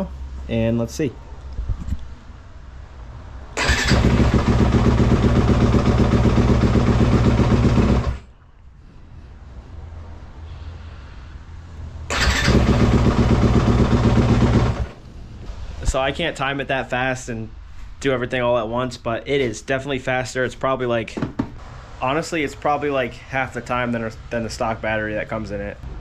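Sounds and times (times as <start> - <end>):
electric starter: 3.6 - 8.2, 12.1 - 15.0
motorcycle engine running: 3.6 - 8.2, 12.1 - 15.0.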